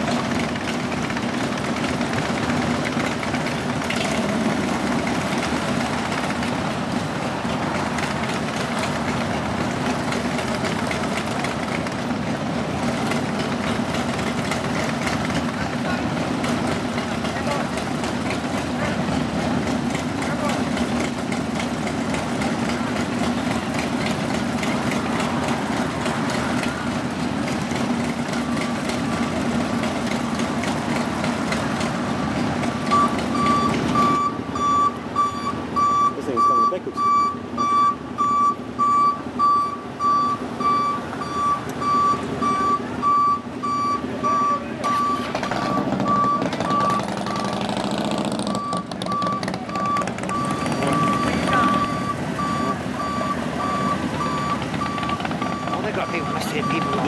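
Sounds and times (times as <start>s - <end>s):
motorcycles idling: 0.0s - 57.0s
vehicle reversing alarm beeping: 12.8s - 57.0s.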